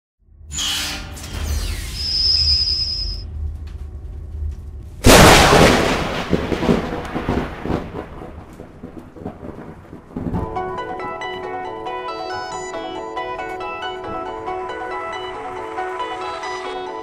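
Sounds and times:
low rumble: 3.2 - 10.4
thunder-like boom: 5.0 - 10.8.

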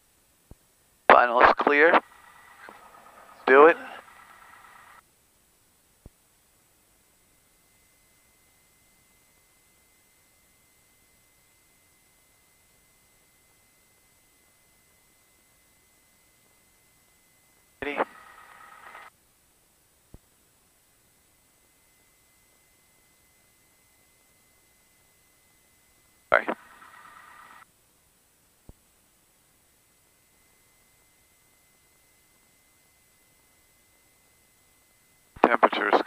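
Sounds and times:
low electronic hum: 0.0 - 36.0
buzzy radio noise burst: 1.1 - 5.0, 13.3 - 19.1, 21.8 - 27.7, 29.9 - 36.0
faint intercom hiss: 1.1 - 5.0, 17.8 - 19.1, 26.3 - 27.6, 35.3 - 36.0.

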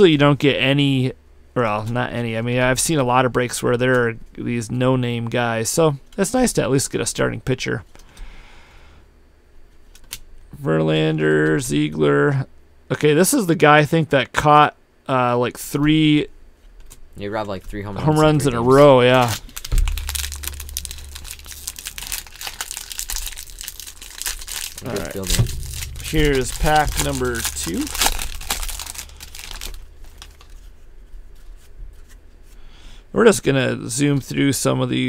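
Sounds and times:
steady low hum: 15.6 - 33.2
plastic foil wrapper crinkling: 18.7 - 30.9
cards rustling while flipped: 19.0 - 32.6.

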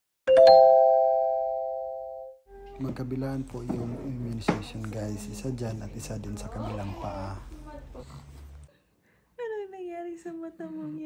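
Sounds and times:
notification bell chime: 0.3 - 2.1.

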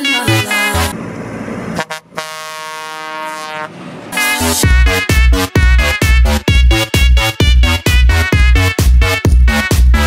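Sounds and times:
loud dance music: 0.0 - 0.9, 4.2 - 10.0
tractor horn blast: 0.0 - 0.9, 1.8 - 8.7.

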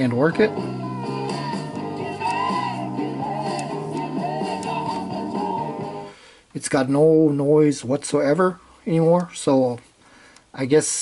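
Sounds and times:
rock song with singing and guitar: 0.0 - 6.2.

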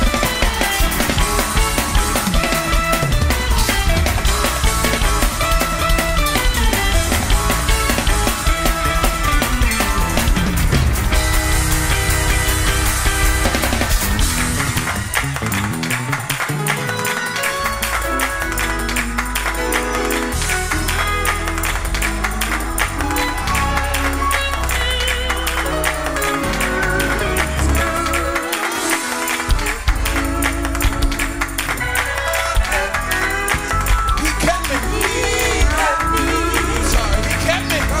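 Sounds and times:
drum and cymbal hits: 0.0 - 15.6
bass and guitar notes: 0.0 - 38.0
gospel church band music: 0.0 - 38.0.

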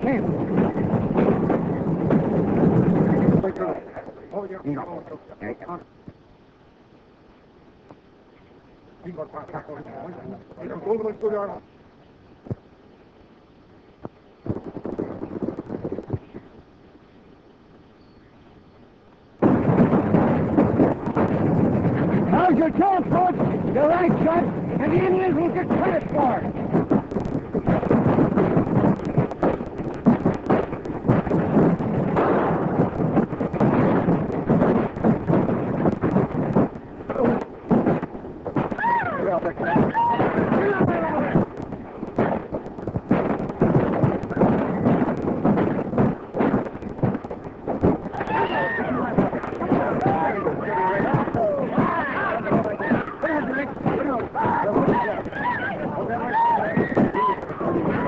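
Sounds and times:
gunshots: 19.4 - 38.0
people shouting and yelling: 38.6 - 41.4, 48.1 - 58.0.

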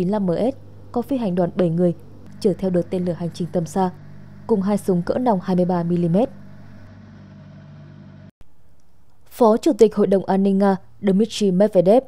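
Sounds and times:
turboprop engines droning: 0.0 - 8.4.

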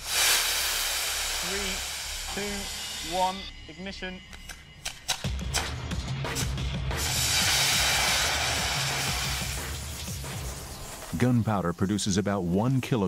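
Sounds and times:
rocket motor hissing: 0.0 - 3.5, 6.9 - 11.4
background music with drums: 4.4 - 11.3.

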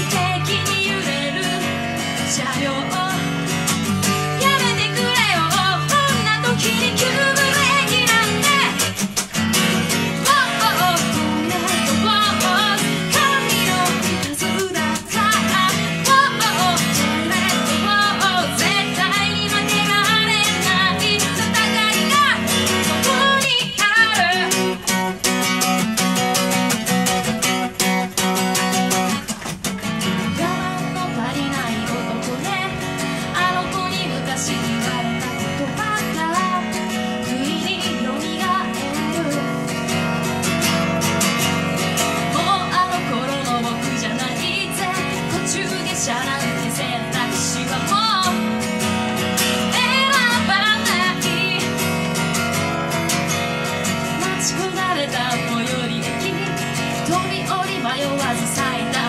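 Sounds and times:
woman singing: 0.0 - 29.2, 29.9 - 59.0
acoustic guitar strumming: 0.0 - 59.0.

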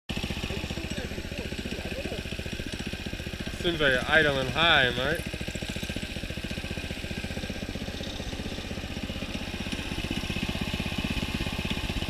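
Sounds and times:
small engine idling fast: 0.1 - 12.0.

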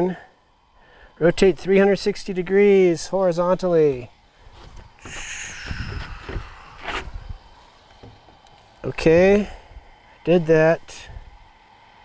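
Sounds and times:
footsteps on wooden deck: 4.5 - 8.6
hiss: 5.0 - 8.2
soft thumps: 8.0 - 8.4.

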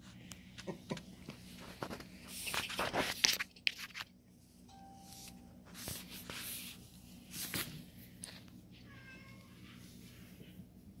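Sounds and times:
cat meowing: 8.8 - 9.6.

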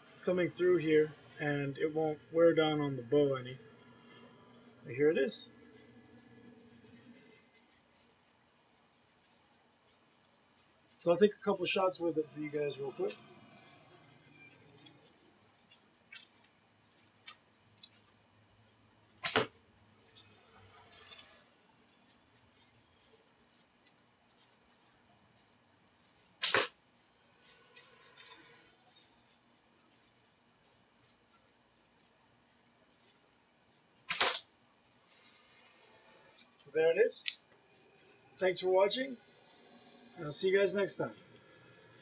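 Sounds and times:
bow shot snap: 19.2 - 19.5, 26.4 - 26.7, 34.1 - 34.4.

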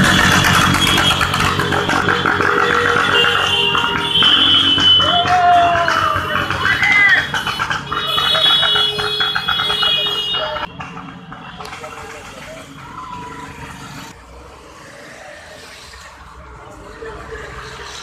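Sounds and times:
scooters and motorcycles passing: 0.0 - 18.0
voices: 1.0 - 18.0.

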